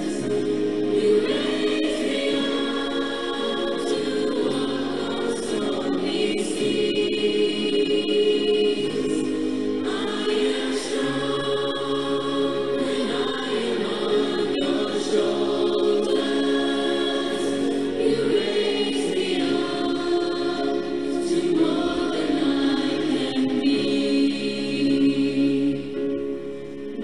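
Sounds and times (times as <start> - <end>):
choir singing long chords: 0.0 - 27.0.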